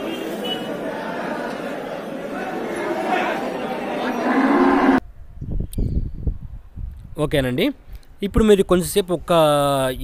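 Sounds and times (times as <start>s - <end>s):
crowd chatter: 0.0s - 5.0s
water buffalo lowing: 4.0s - 5.0s.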